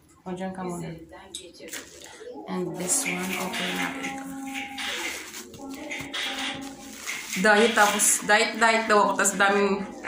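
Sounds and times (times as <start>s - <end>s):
faint music: 0.0s - 10.0s
plastic film crinkling: 1.7s - 9.8s.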